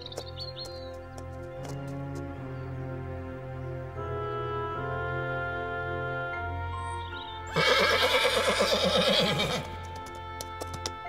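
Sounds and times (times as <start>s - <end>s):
soft orchestral music: 0.0s - 11.0s
horse whinnying: 7.5s - 9.8s.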